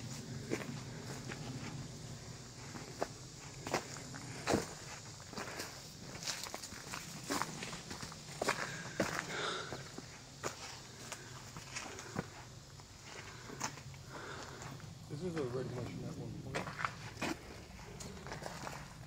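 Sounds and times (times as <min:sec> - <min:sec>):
footsteps on woodland path: 0:00.0 - 0:19.0.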